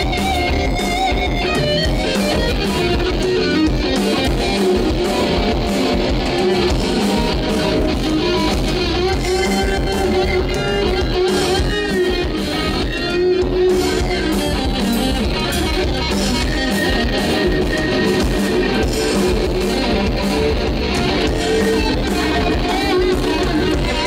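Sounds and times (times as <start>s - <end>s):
bass guitar: 0.0s - 24.0s
drums: 0.0s - 24.0s
electric guitar lead: 0.0s - 24.0s.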